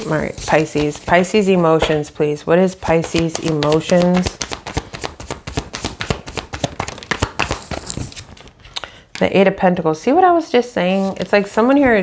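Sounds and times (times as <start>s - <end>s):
cards shuffled by hand: 3.1s - 8.6s.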